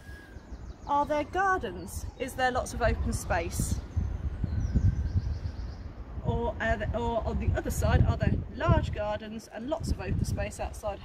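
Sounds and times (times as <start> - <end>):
faint bird chirping: 0.0 - 6.2
wind buffeting microphone: 0.0 - 11.0.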